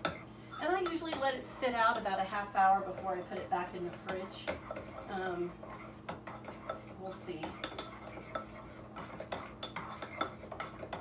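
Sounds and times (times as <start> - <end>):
spoon stirring and scraping crock: 0.0 - 11.0.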